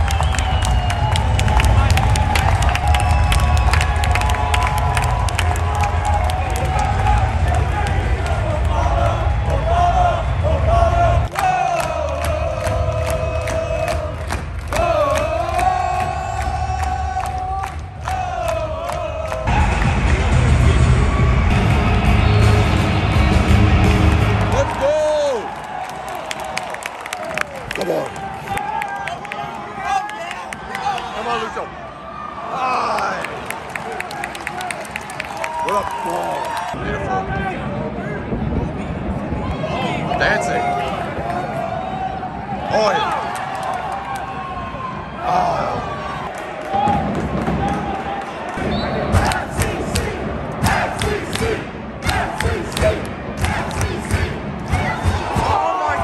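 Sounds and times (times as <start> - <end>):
crowd noise: 0.0 - 56.0
heavy low rumble: 19.4 - 24.8
people shouting: 49.1 - 56.0.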